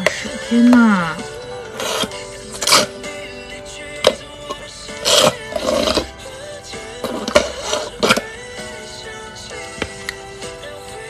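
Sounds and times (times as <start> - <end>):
background music: 0.0 - 11.0
slurping through a straw: 1.6 - 3.0, 4.8 - 6.2, 7.0 - 8.3.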